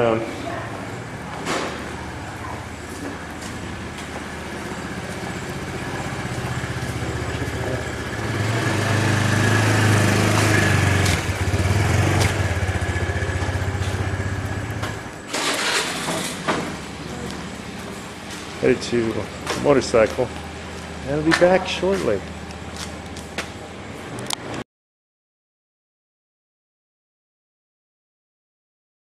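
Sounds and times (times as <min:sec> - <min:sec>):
motorbike engine running: 0:01.9 - 0:23.1.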